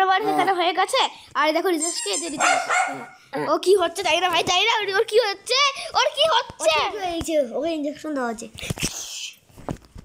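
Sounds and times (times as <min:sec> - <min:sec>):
child's high-pitched wordless voice: 0:00.0 - 0:09.4.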